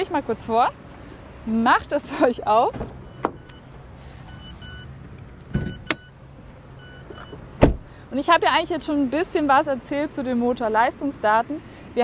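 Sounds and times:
car door shutting: 0:02.7 - 0:03.6, 0:04.3 - 0:06.1, 0:06.9 - 0:07.9
car warning chime beeping: 0:02.9 - 0:07.5.

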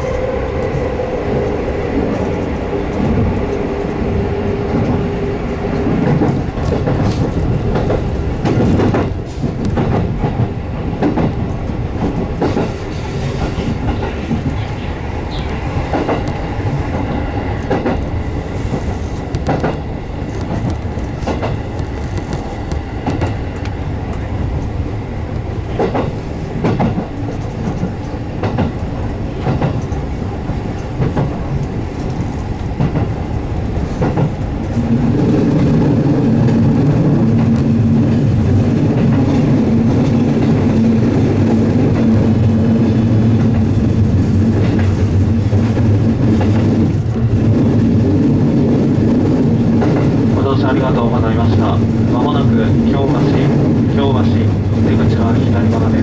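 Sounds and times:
train running rumble: 0:00.0 - 0:56.0.

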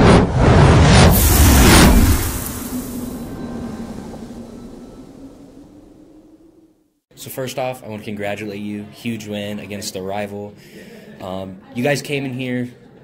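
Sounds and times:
whoosh and boom hit: 0:00.0 - 0:06.6
low steady tone: 0:01.4 - 0:06.8.

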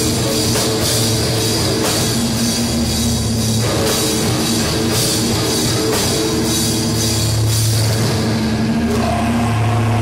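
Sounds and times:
bass guitar chords: 0:00.0 - 0:10.0
distorted electric guitars: 0:00.0 - 0:10.0
drums: 0:00.0 - 0:10.0.

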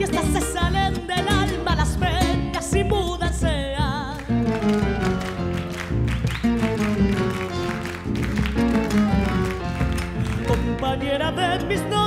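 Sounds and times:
bass drum rhythmic beat: 0:00.0 - 0:11.0
acoustic guitars strumming: 0:00.0 - 0:12.0.

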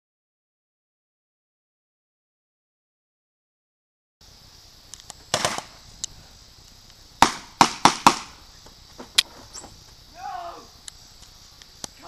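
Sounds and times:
steady high hiss: 0:04.2 - 0:12.0
sharp knocks and bangs: 0:07.2 - 0:08.4.

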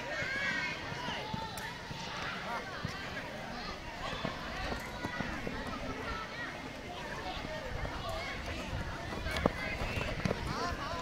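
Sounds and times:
children shouting: 0:00.0 - 0:11.0.

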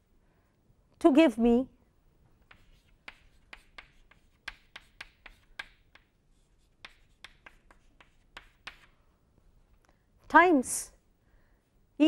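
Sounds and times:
chalk tapping and scratching on blackboard: 0:02.4 - 0:09.0.

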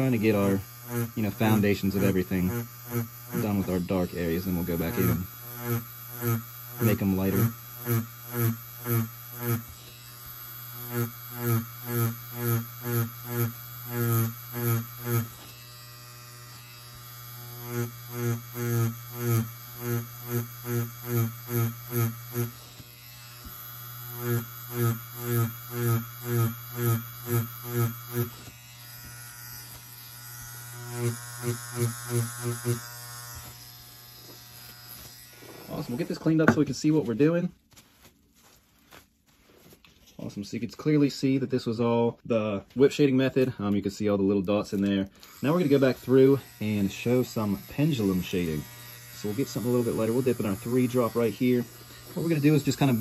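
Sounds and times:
tattoo machine buzzing: 0:00.0 - 0:36.5, 0:45.1 - 0:53.0.

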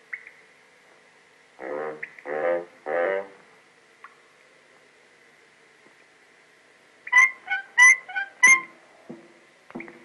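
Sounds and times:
faint film hiss: 0:00.0 - 0:10.0.

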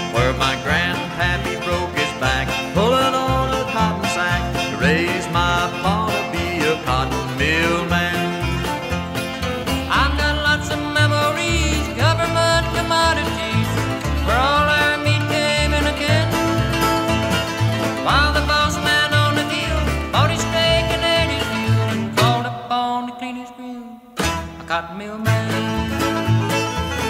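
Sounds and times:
sliding melody notes: 0:00.0 - 0:22.5
banjo: 0:00.0 - 0:27.0
bass: 0:00.0 - 0:27.0
guitar: 0:00.0 - 0:27.0.

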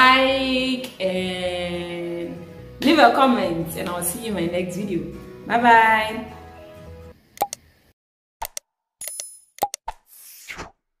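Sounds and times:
short clicks and pops: 0:07.4 - 0:07.6, 0:08.4 - 0:10.0.

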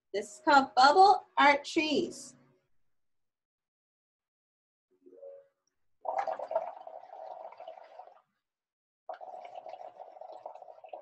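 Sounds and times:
blowing bubbles through a straw: 0:06.0 - 0:08.2, 0:09.1 - 0:11.0.

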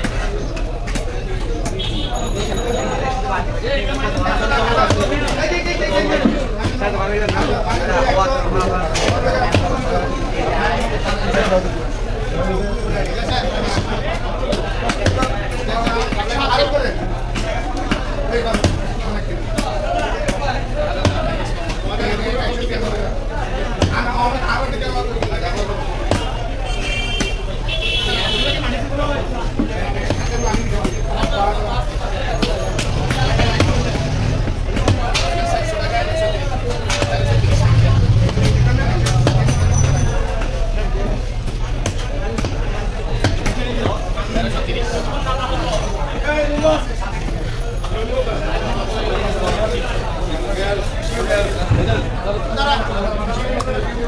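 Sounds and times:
market voices: 0:00.0 - 0:54.0.

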